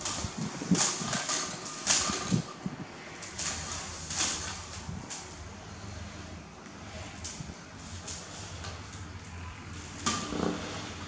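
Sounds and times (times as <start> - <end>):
wicker basket scraping and knocking: 0.0 - 6.1, 9.8 - 11.0.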